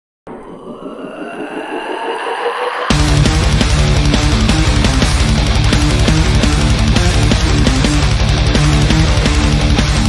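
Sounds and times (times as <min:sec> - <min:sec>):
electronic build-up with rising tones: 0:00.3 - 0:06.6
heavy metal music: 0:00.3 - 0:10.0.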